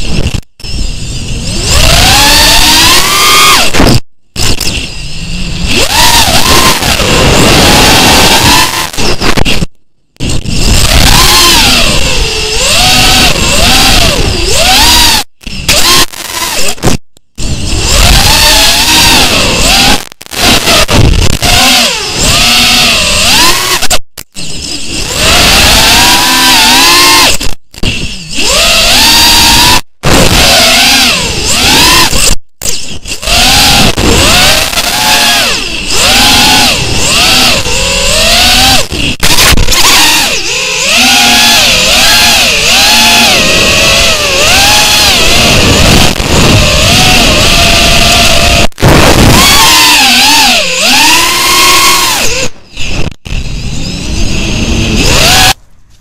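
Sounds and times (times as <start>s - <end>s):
drone motors whining: 0.0s - 56.0s.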